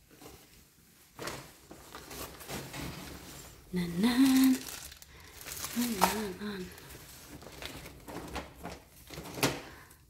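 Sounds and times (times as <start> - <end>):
plastic rustling: 0.0 - 10.0
hands rummaging through electronics: 1.2 - 9.8.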